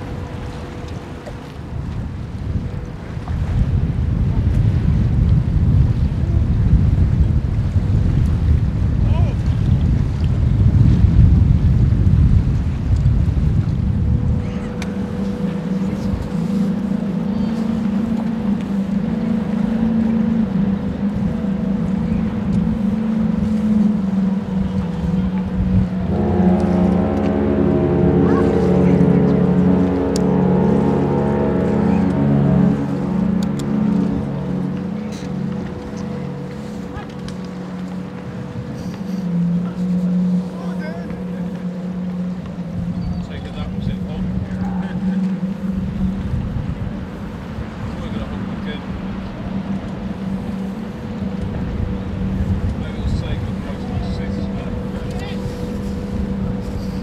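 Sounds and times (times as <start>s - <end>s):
low machinery hum: 0.0s - 57.0s
ship's horn deep blast: 0.0s - 57.0s.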